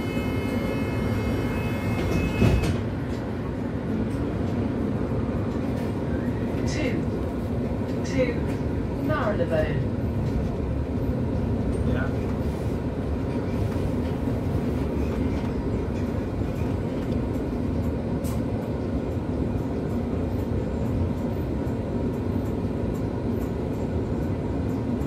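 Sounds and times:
bus engine rumble: 0.0 - 25.0.

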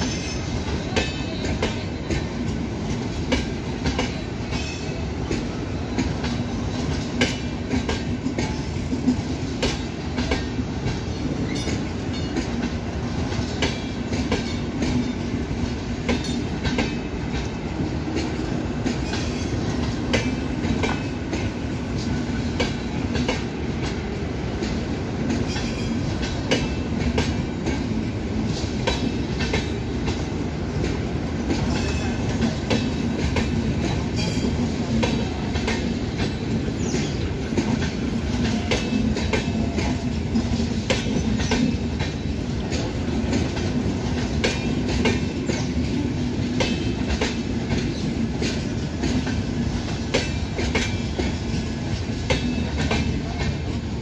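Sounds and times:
train rumbling past: 0.0 - 54.0
wheels clacking on rail joints: 0.0 - 54.0.

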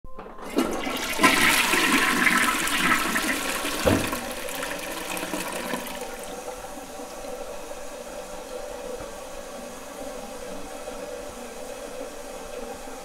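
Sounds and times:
toilet flushing: 0.1 - 13.0.

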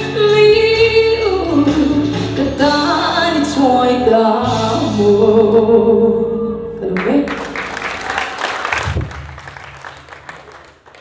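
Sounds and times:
audience applauding: 7.0 - 11.0.

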